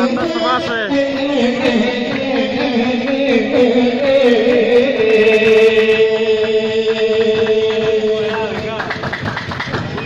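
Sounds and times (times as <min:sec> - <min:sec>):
group hand-clapping: 0:01.2 - 0:10.0.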